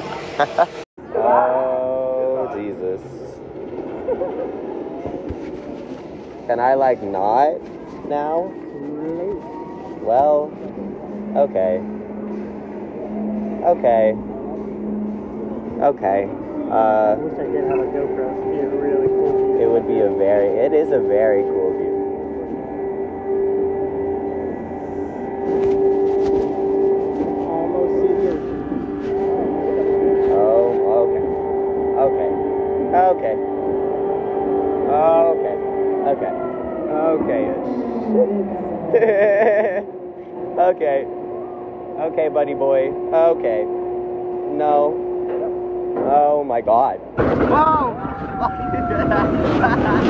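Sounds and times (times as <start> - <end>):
ride lift droning hum: 0.0 - 50.0.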